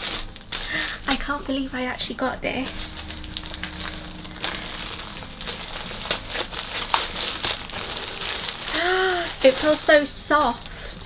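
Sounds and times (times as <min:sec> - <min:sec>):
plastic package crinkling and tearing: 0:00.0 - 0:01.6, 0:02.6 - 0:11.0.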